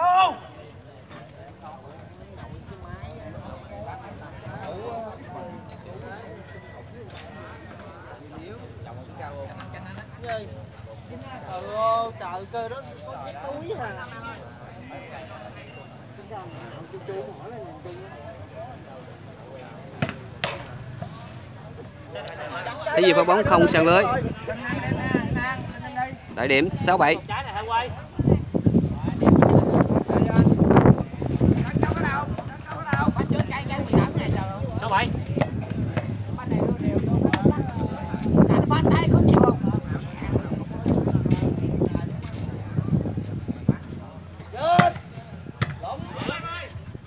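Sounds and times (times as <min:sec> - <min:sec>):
man shouting: 0:00.0 - 0:00.5
people chatting: 0:00.0 - 0:47.0.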